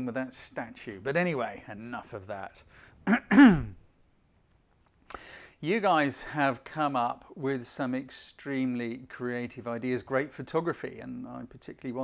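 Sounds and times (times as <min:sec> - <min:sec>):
man clearing his throat: 0:03.1 - 0:03.8.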